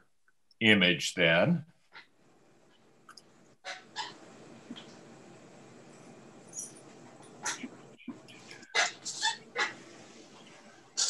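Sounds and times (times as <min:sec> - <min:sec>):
animal yelping: 0:08.6 - 0:09.8.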